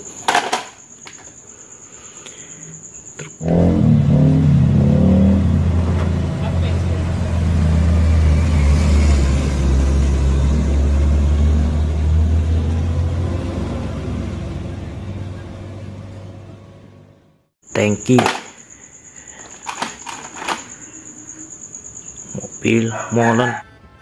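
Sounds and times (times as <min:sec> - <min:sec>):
truck engine rumbling under load: 0:03.5 - 0:17.2.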